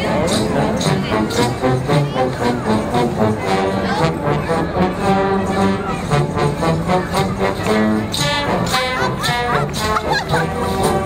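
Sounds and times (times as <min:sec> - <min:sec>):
brass band playing: 0:00.0 - 0:11.0
crowd voices: 0:00.0 - 0:11.0.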